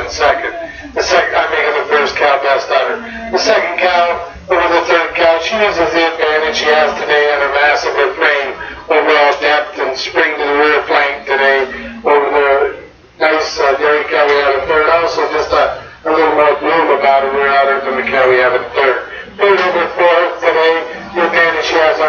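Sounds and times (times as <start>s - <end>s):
man talking over a loudspeaker: 0.0s - 22.0s.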